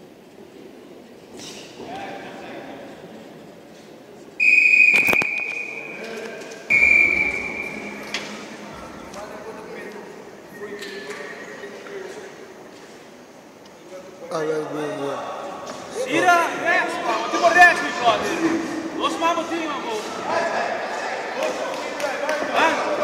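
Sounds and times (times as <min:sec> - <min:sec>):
voices in a hall: 0:00.0 - 0:23.0
high-pitched whistle blasts: 0:04.4 - 0:06.1, 0:06.7 - 0:08.6.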